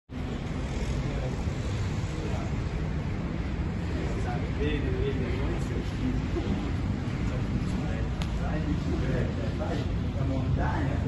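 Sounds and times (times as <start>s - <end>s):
low traffic rumble: 0.1s - 11.0s.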